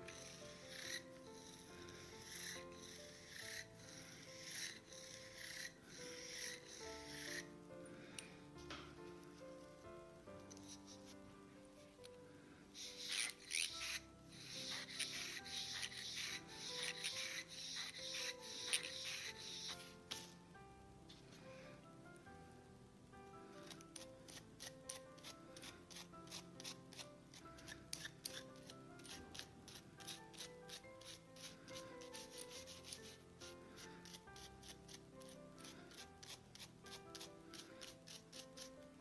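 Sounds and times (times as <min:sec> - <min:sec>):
soft background music: 0:00.0 - 0:39.0.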